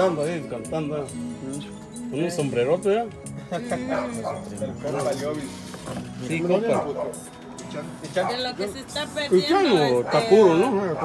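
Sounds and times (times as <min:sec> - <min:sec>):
background music: 0:00.0 - 0:11.0
voices talking: 0:00.0 - 0:11.0.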